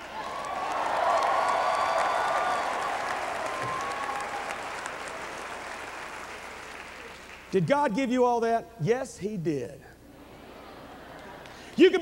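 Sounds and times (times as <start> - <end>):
congregation applauding: 0.0 - 7.8.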